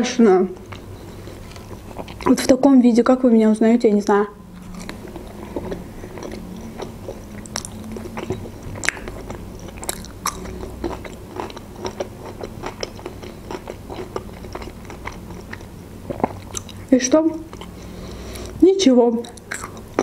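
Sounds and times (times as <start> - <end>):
faint steady hum: 0.0 - 20.0
person chewing food: 0.6 - 2.4, 4.5 - 18.6, 19.2 - 20.0
mouth clicks and smacks: 5.6 - 11.2, 19.2 - 20.0.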